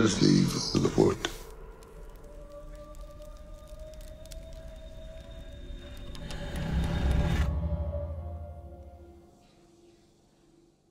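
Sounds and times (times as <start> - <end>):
faint crackles: 0.2 - 7.7.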